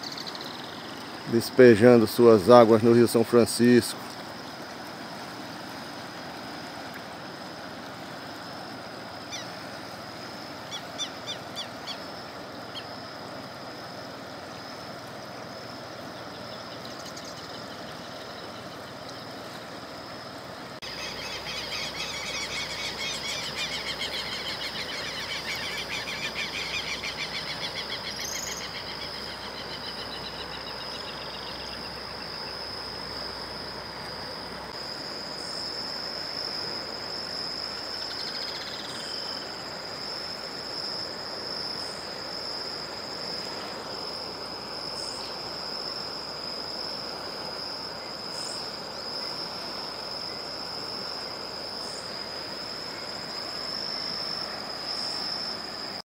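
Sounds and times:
river rushing: 0.7 - 17.0, 39.0 - 56.0
rapidly pulsing trill of calls: 20.8 - 32.2.

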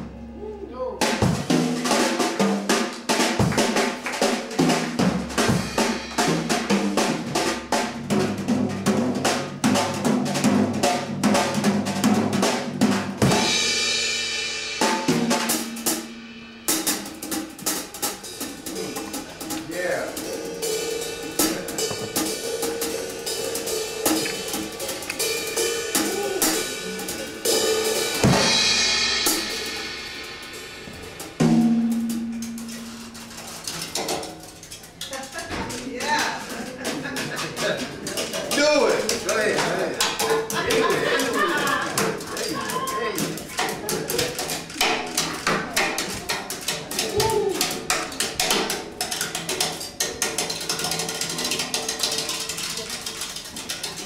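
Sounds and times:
drum kit solo: 0.0 - 34.9, 35.7 - 54.0
cymbal crashes: 20.2 - 32.4.

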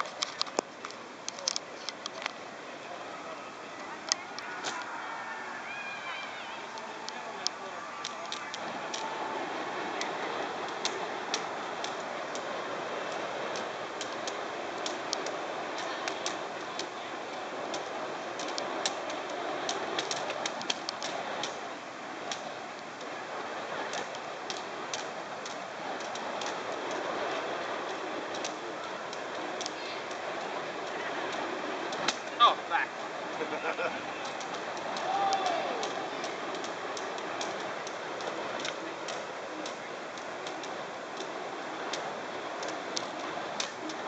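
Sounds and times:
fire crackling: 0.0 - 44.0
rushing flame: 0.0 - 44.0.

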